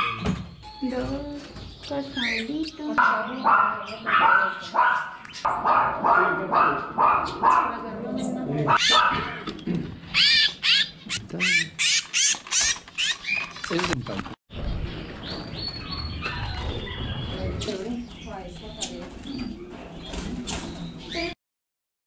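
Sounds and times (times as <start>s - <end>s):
birds chirping: 0.0s - 21.4s
dog barking: 3.0s - 7.9s, 8.7s - 9.5s.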